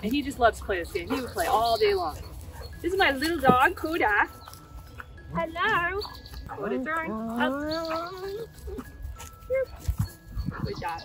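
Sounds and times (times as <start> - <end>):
dog whimper: 6.0 - 11.0.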